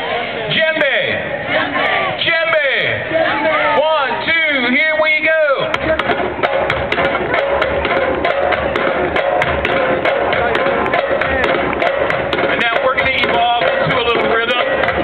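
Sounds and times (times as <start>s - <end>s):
voices: 0.0s - 6.7s
hand drums playing fast rhythm: 5.6s - 15.0s.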